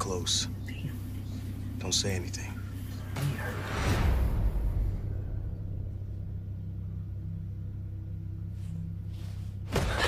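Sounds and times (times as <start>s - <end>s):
faint low hum: 0.0s - 10.0s
low rumbling drone: 0.0s - 10.0s.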